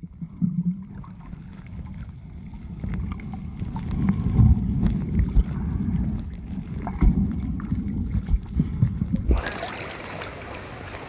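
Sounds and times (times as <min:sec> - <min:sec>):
underwater rumble of moving water: 0:00.0 - 0:11.0.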